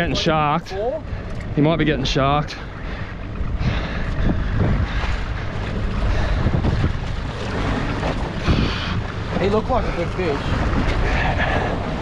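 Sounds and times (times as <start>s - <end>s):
water washing against boat hull: 0.0s - 12.0s
wind buffeting microphone: 0.0s - 12.0s.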